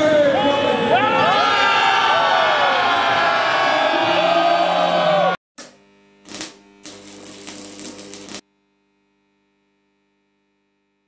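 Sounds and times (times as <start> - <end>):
crowd noise: 0.0 - 5.4
humming drone with steady tones: 5.6 - 11.0.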